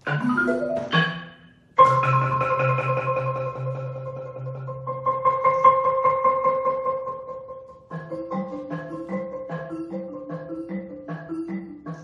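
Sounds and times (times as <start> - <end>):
prepared marimba rapid mallet strokes: 0.0 - 7.1.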